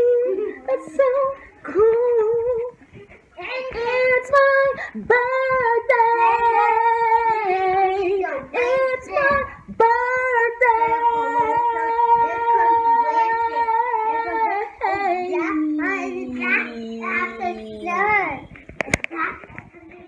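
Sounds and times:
high voice singing long notes: 0:05.0 - 0:18.4.

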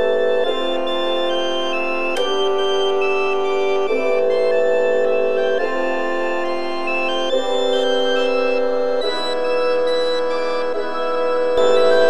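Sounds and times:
church organ chords: 0:00.0 - 0:12.0.

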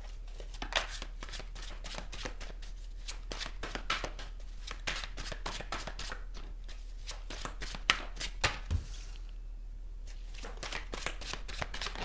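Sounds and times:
cards being shuffled: 0:10.1 - 0:12.0.

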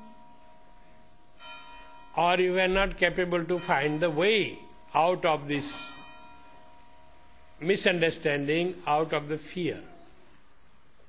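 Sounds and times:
faint bell ringing: 0:00.0 - 0:10.6.

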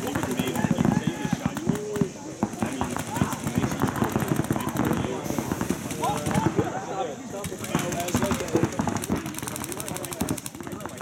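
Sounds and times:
paintball markers firing: 0:00.0 - 0:06.6, 0:07.4 - 0:11.0.

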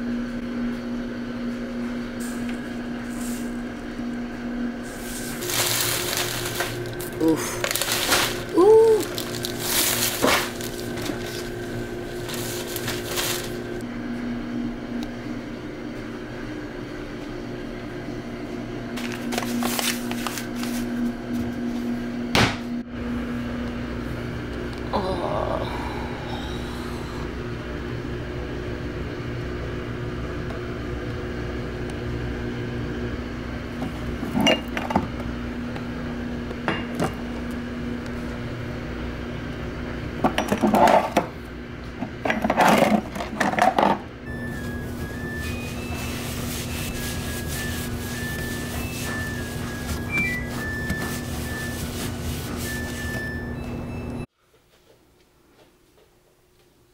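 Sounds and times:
paper towel scrubbing a shelf: 0:04.8 - 0:13.7, 0:19.0 - 0:21.0, 0:44.4 - 0:53.6.

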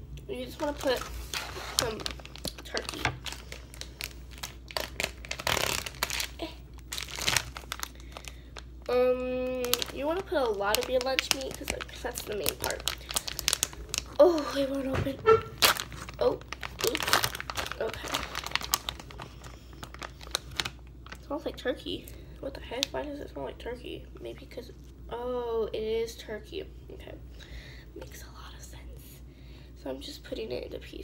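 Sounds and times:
plastic packaging crinkling: 0:00.3 - 0:23.1.

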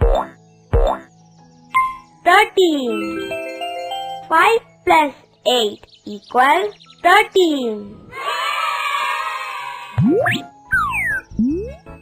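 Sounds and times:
cartoon boing sound effects: 0:10.0 - 0:11.8.

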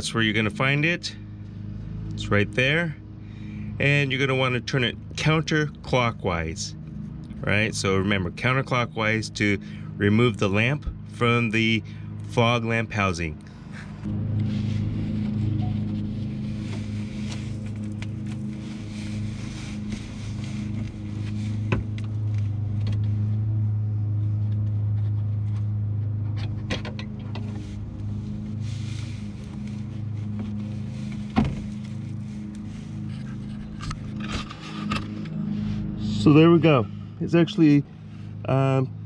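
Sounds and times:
engine idling hum: 0:00.0 - 0:39.0.

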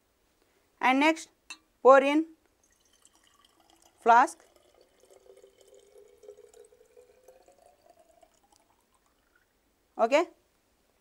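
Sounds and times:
water pouring into glass flask: 0:02.5 - 0:09.6.

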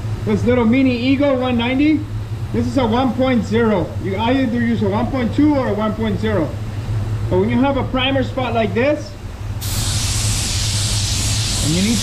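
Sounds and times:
paint spray gun hissing: 0:09.6 - 0:12.0.

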